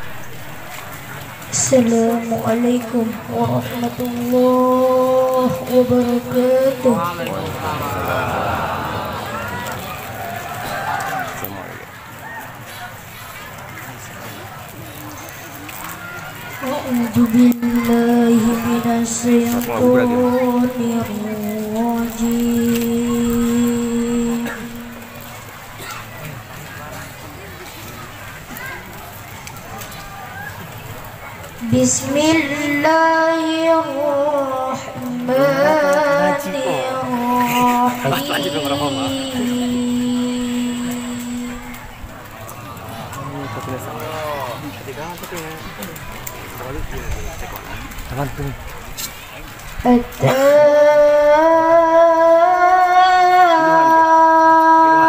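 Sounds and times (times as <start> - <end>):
boy reciting melodically into microphone: 1.0 - 7.9, 16.0 - 26.2, 31.6 - 42.0, 49.7 - 55.0.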